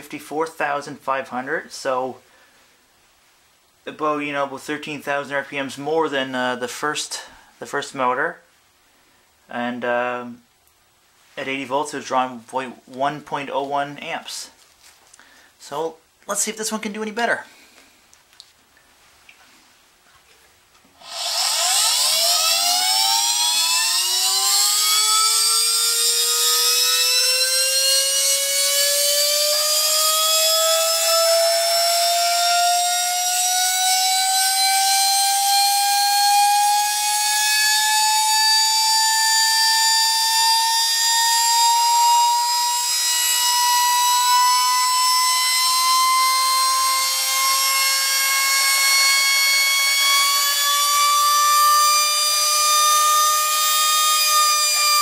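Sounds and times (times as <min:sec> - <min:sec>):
vacuum cleaner motor whining: 0:21.0 - 0:55.0.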